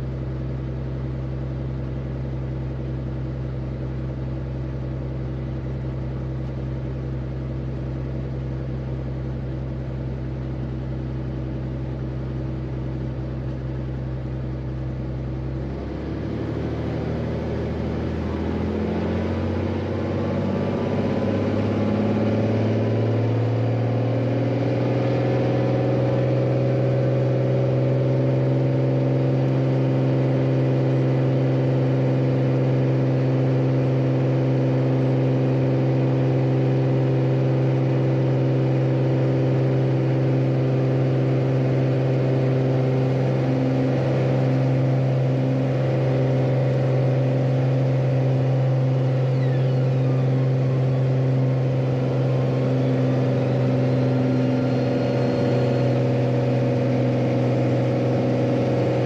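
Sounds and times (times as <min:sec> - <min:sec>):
propeller plane engine at full power: 0:00.0 - 0:59.0.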